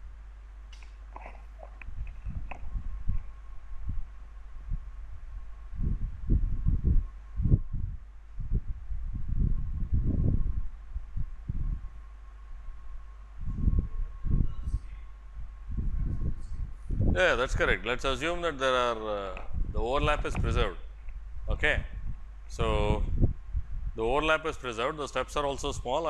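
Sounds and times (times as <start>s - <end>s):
electrical hum: 0.0s - 26.0s.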